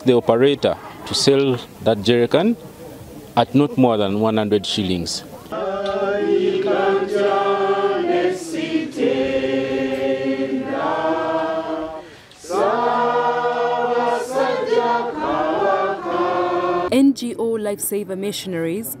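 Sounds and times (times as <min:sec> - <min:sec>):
group of voices singing: 0:05.5 - 0:16.9.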